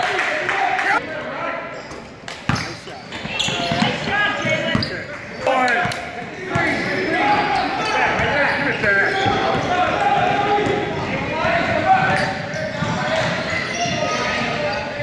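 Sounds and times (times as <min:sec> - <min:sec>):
people calling out and shouting: 0:02.6 - 0:15.0.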